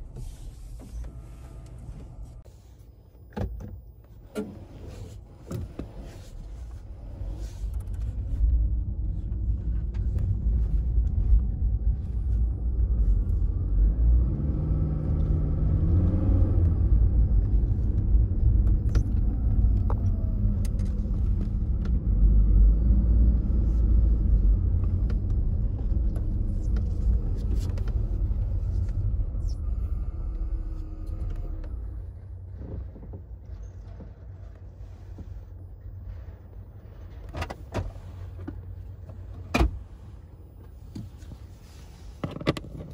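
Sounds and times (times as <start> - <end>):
car engine revving: 7.0 - 32.8.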